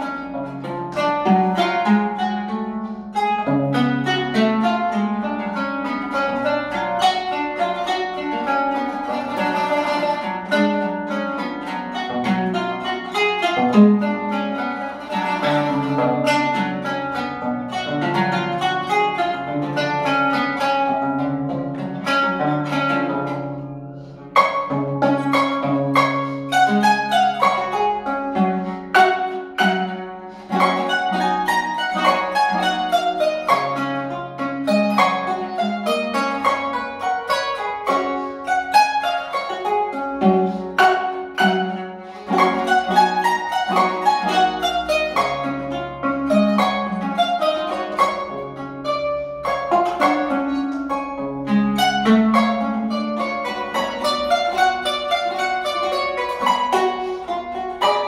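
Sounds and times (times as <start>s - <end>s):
plucked zither melody: 0.0s - 58.0s.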